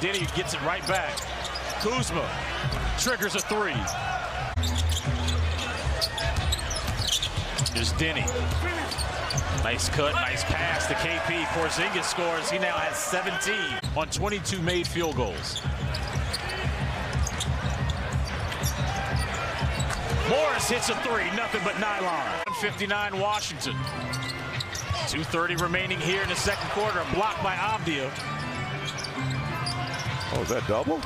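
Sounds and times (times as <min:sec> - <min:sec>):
sneakers squeaking: 0:00.0 - 0:10.8, 0:14.8 - 0:20.8, 0:22.0 - 0:31.0
arena crowd noise: 0:00.0 - 0:31.0.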